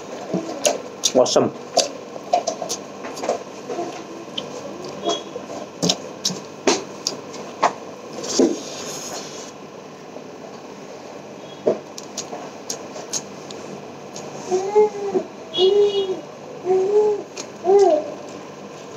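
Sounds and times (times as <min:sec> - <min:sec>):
person chewing food: 0:00.0 - 0:07.4, 0:11.9 - 0:14.4.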